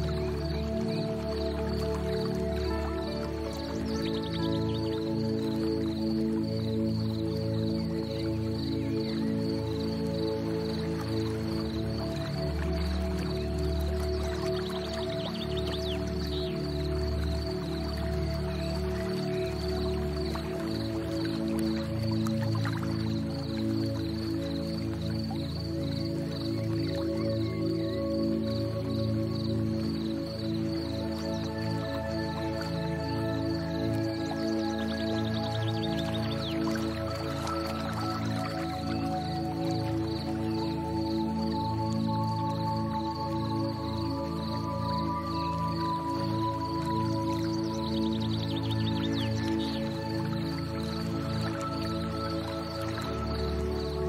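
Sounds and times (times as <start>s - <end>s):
ambient music: 0.0s - 54.0s.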